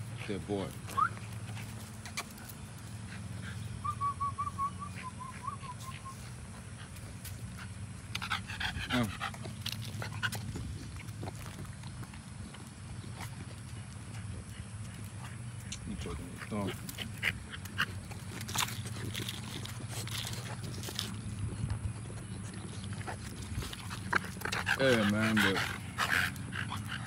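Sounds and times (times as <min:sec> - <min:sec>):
dog panting: 0:00.0 - 0:27.0
dog whimpering: 0:00.9 - 0:01.4.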